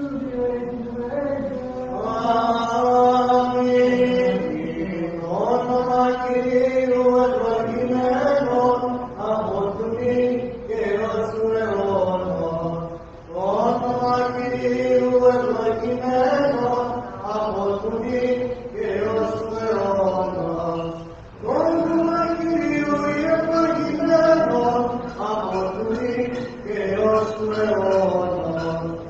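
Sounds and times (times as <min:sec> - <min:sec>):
liturgical chant singing: 0:00.0 - 0:29.0.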